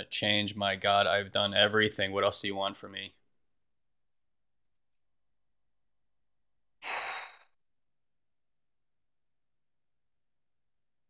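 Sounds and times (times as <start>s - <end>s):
breathy sigh: 6.8s - 7.6s.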